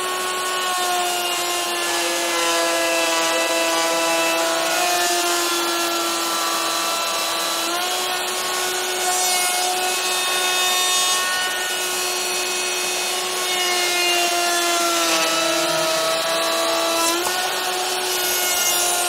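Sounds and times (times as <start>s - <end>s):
router bit rasping in wood: 0.0s - 19.0s
router motor whine: 0.0s - 19.0s.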